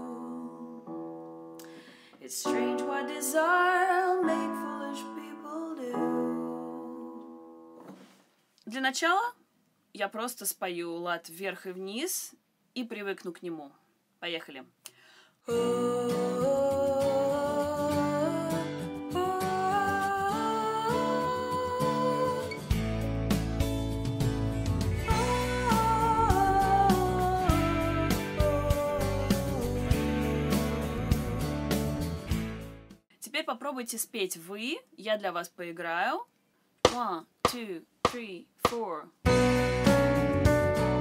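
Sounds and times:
woman singing with vibrato: 0.0 - 1.0, 2.2 - 7.4, 15.5 - 22.6, 25.1 - 31.6
soft instrumental accompaniment: 0.0 - 8.0, 15.6 - 33.0, 39.3 - 41.0
piano chords: 2.5 - 7.8, 39.3 - 41.0.

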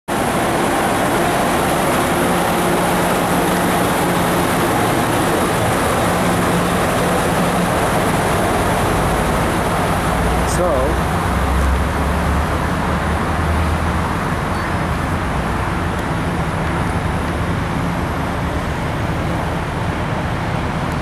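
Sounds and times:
train wheels rolling on rail: 0.1 - 21.0.

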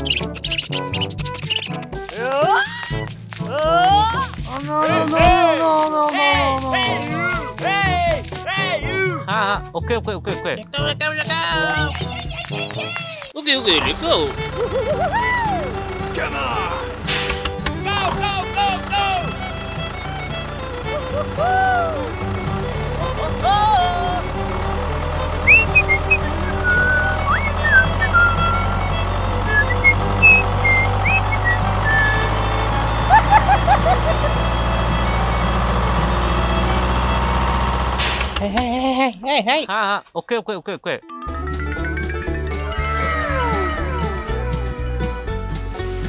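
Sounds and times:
truck engine rumble: 0.0 - 8.4, 11.4 - 39.0, 41.2 - 46.0
background music: 0.0 - 37.9, 41.0 - 46.0.

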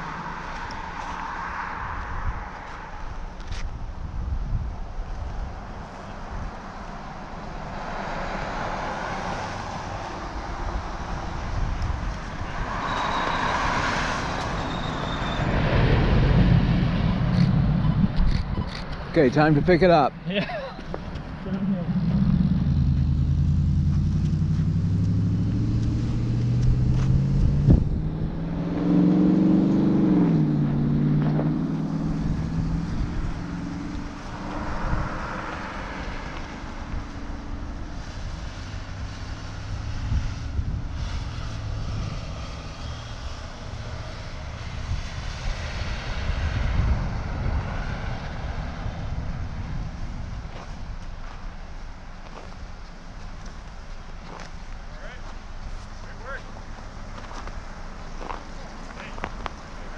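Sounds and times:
rushing road noise: 0.0 - 59.9
pickup truck driving past: 7.6 - 52.5.

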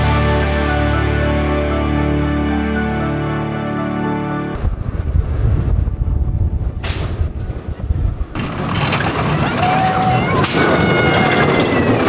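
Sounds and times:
roller coaster rumbling on track: 4.6 - 12.0.

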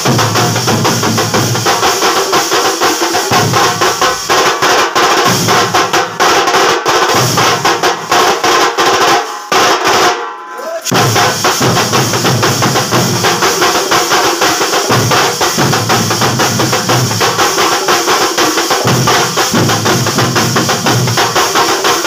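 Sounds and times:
deep barrel drums beating: 0.0 - 9.0, 10.9 - 22.0
stick-played drums: 0.0 - 22.0.

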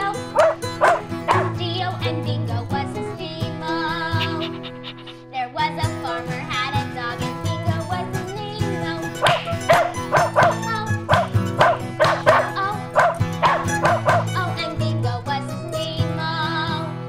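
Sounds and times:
cheerful music: 0.0 - 16.0
small dog barking: 0.3 - 1.6, 9.2 - 14.4.

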